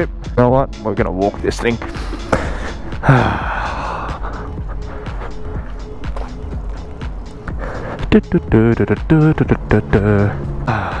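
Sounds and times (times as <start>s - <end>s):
background music: 0.0s - 11.0s
long breathy sigh: 2.6s - 4.6s, 10.7s - 11.0s.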